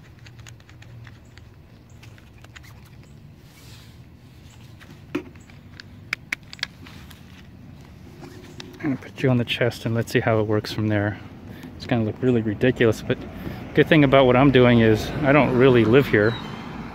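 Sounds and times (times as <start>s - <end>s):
low steady hum: 0.0s - 15.7s
phone gimbal clicks and rattles: 4.4s - 7.5s.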